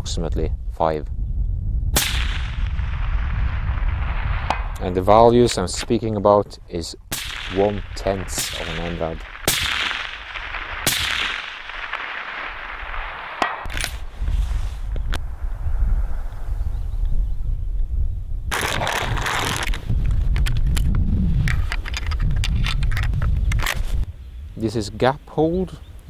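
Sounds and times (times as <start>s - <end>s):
wind rumble on microphone: 0.0s - 11.2s, 11.8s - 26.0s
rifle shots cracking: 2.0s - 6.0s, 7.1s - 14.1s.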